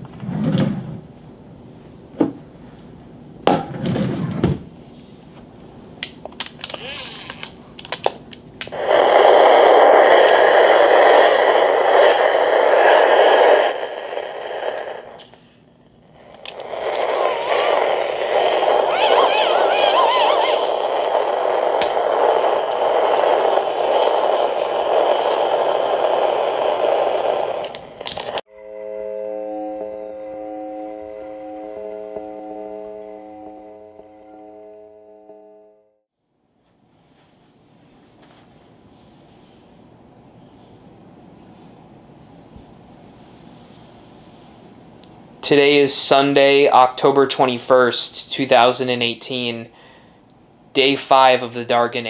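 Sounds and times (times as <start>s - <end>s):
radio static: 8.7s - 15.4s, 16.2s - 28.4s.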